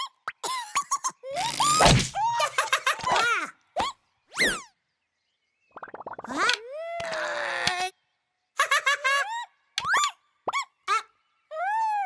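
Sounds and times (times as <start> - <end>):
cartoon bird squeaks and chirps: 1.3 - 4.7.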